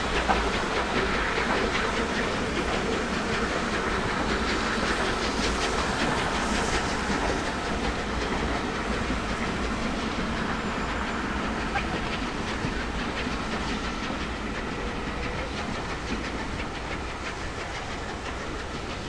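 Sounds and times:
train wheels clicking over rail joints: 0.0 - 19.0.

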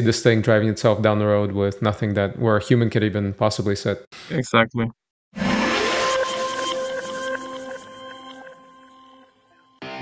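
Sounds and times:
electronic held tones: 5.8 - 9.8.

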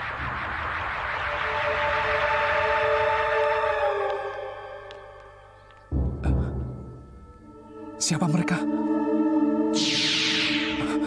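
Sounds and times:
loud rushing whoosh: 0.0 - 3.8, 9.8 - 11.0.

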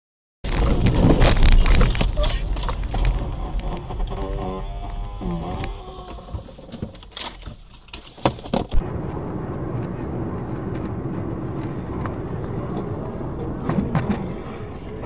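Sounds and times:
car road and engine noise: 0.5 - 15.0.

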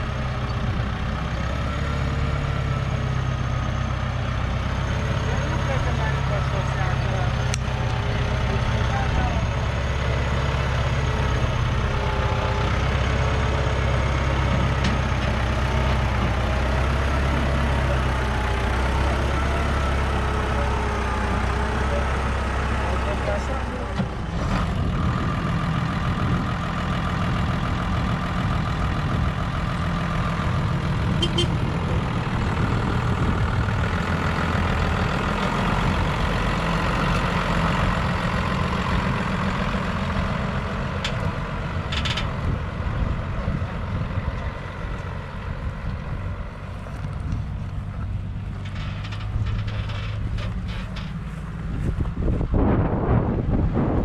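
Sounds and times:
diesel tractor engines running: 0.0 - 54.0
tractor pulling loaded trailer: 0.0 - 54.0.

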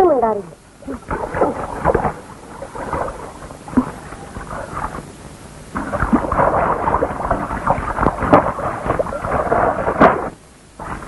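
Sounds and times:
water splashing: 0.0 - 11.0.

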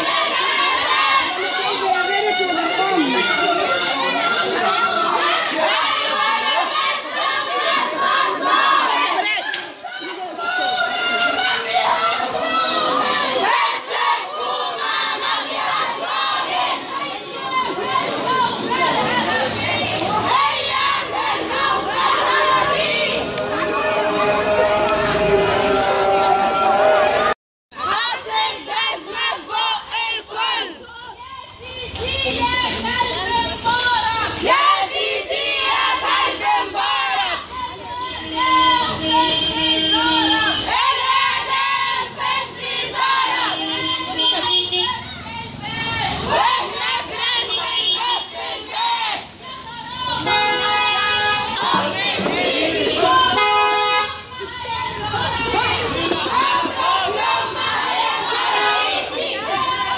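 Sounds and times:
crowd chanting slogans: 0.0 - 59.9.

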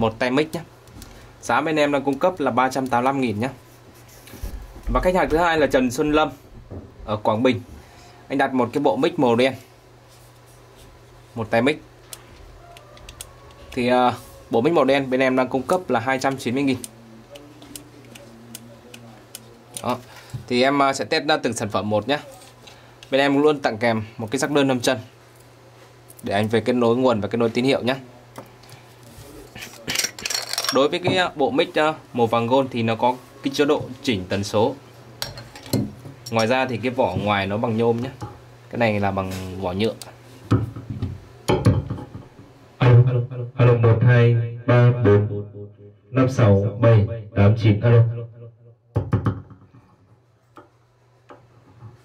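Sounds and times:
low electrical hum: 0.0 - 49.0
microphone handling knocks: 4.4 - 7.1, 40.5 - 42.5, 48.9 - 50.0.

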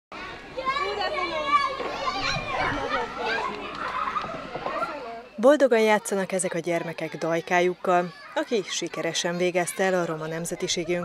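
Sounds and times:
young children talking and calling: 0.1 - 11.0.

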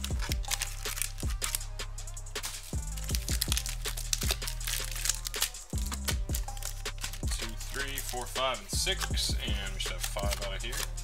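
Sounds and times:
foil card packs crinkling: 0.0 - 1.6, 2.4 - 11.0
hip hop music: 0.0 - 11.0.

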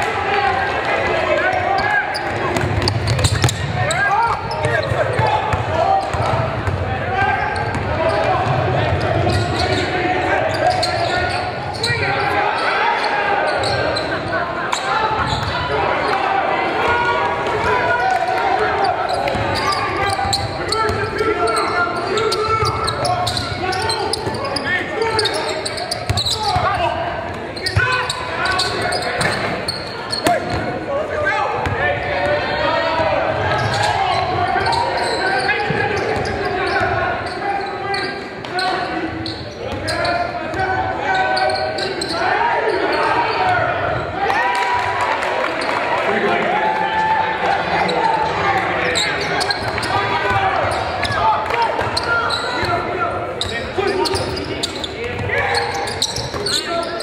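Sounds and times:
indistinct echoing voices: 0.0 - 57.0.

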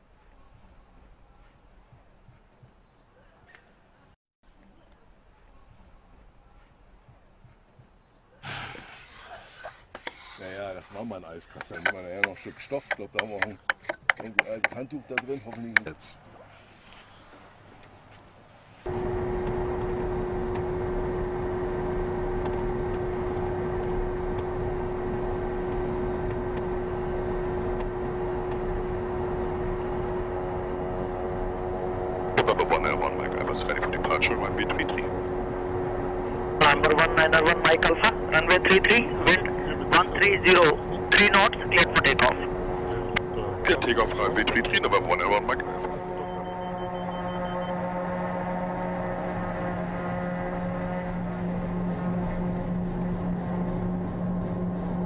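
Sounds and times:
turboprop engines humming: 18.8 - 55.0
man talking: 32.4 - 35.1, 36.6 - 46.4.

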